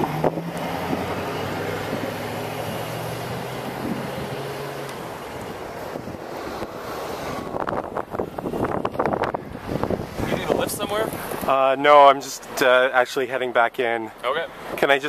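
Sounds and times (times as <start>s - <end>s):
low engine hum: 0.0s - 11.5s
traffic noise: 0.0s - 15.0s
wind: 0.0s - 15.0s.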